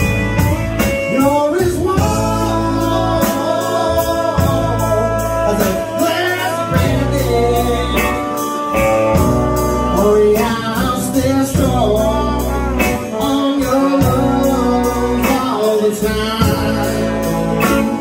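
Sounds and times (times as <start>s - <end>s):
band playing slow ballad: 0.0s - 18.0s
man singing: 0.0s - 18.0s.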